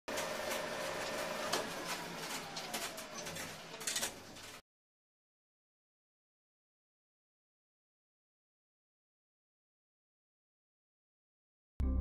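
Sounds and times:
scattered clicks: 0:01.5 - 0:04.6.

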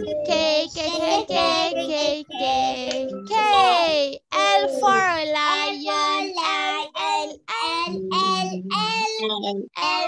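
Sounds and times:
child singing: 0:00.0 - 0:10.0.

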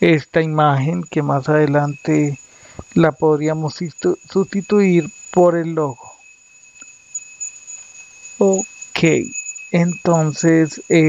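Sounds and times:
high-pitched electronic whine: 0:00.0 - 0:11.0.

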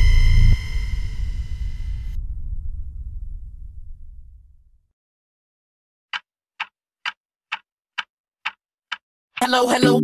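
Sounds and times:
sharp ticks: 0:06.1 - 0:09.0.

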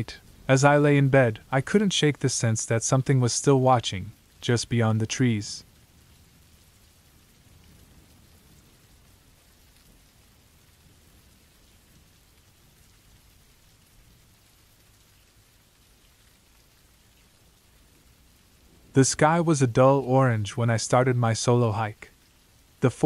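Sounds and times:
faint steady rain: 0:00.0 - 0:23.0.

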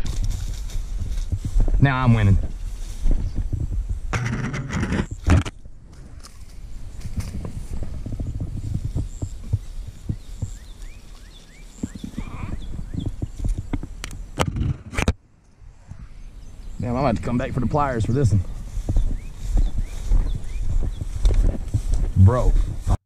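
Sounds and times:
low rumble of movement: 0:00.0 - 0:14.9, 0:15.6 - 0:23.0
tall grass rustling: 0:00.0 - 0:23.0
sharp knocks: 0:04.1 - 0:05.5.

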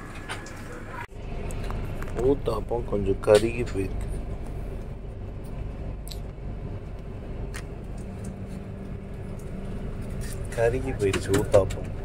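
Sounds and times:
train carriage rumble and hum: 0:00.0 - 0:12.0.

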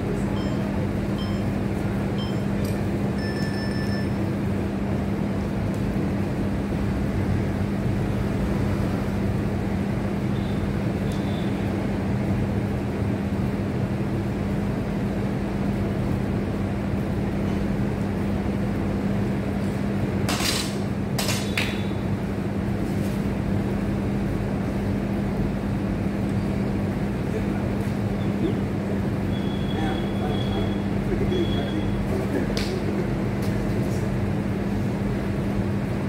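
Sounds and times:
mechanical drone with low hum: 0:00.0 - 0:36.0.

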